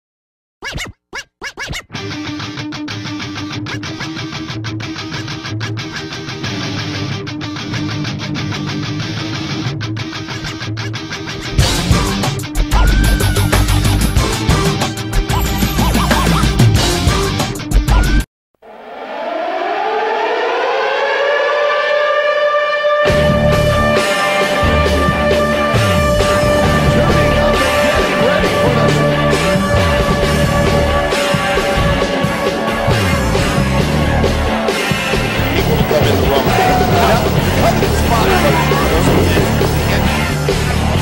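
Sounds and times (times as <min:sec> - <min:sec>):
air raid siren winding up: 0:18.6 - 0:31.1, 0:35.3 - 0:40.3
music track: 0:18.7 - 0:34.5, 0:35.1 - 0:41.0
turntable scratches: 0:35.4 - 0:40.1.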